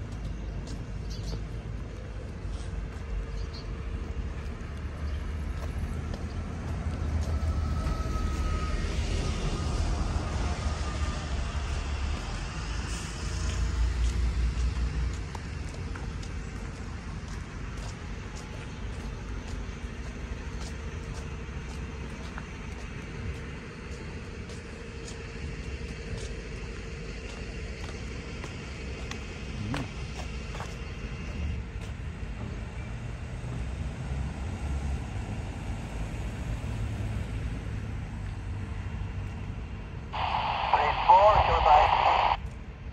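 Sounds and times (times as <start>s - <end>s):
bus engines rumbling: 0.0s - 42.9s
street traffic: 0.0s - 42.9s.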